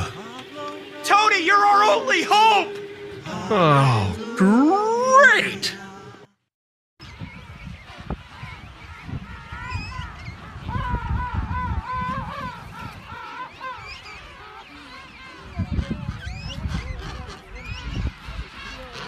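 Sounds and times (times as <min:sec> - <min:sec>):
penguin colony calling: 0:00.0 - 0:06.1, 0:07.9 - 0:19.0.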